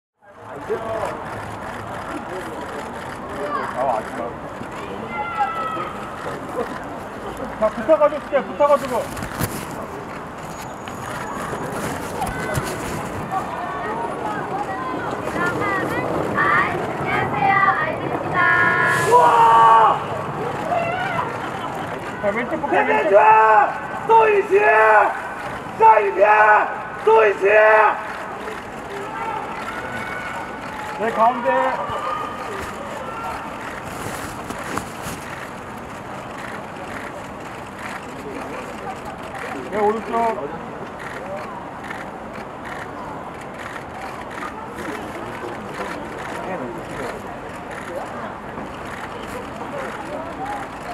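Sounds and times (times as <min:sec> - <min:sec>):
faint indistinct voices: 0:00.2 - 0:50.9
steady noisy street background: 0:00.2 - 0:50.9
hiss of wet rainy street: 0:18.6 - 0:19.8.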